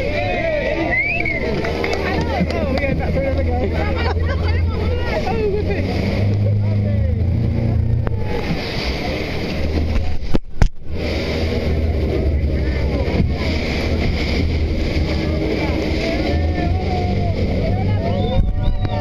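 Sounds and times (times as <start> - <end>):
rushing water: 0.0 - 19.0
speedboat engine droning: 0.0 - 19.0
wind on microphone: 7.1 - 19.0.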